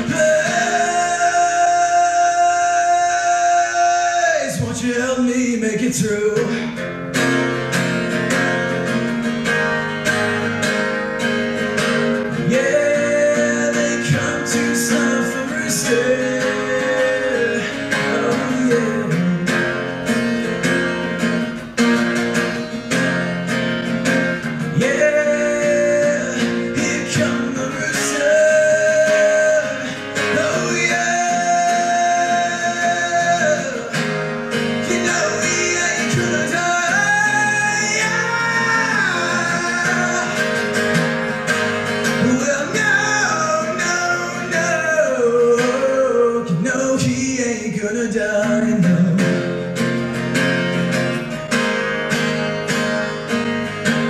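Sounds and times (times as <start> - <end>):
man singing: 0.0 - 10.9, 11.5 - 21.2, 24.3 - 50.0
acoustic guitar strumming: 0.0 - 54.0.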